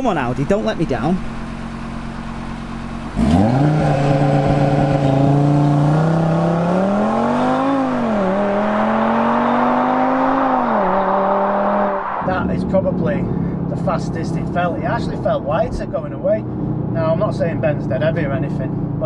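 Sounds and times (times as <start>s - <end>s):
car engine accelerating hard: 1.0s - 19.0s.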